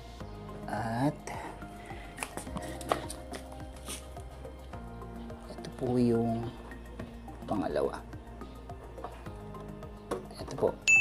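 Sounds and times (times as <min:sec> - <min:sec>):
background music sustained tones: 0:00.0 - 0:11.0.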